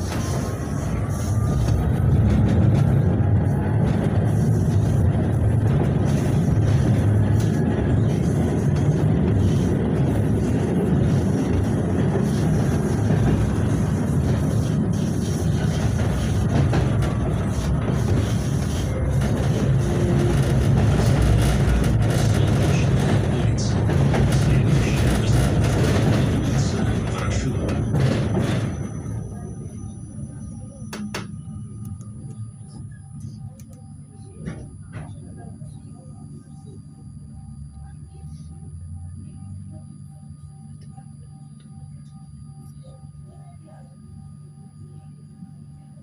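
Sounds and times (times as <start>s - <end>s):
tram wheels rumbling on rails: 0.0s - 38.2s.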